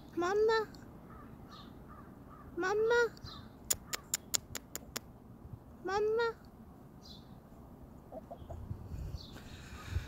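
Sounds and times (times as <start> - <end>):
sharp clicks: 3.7 - 5.1.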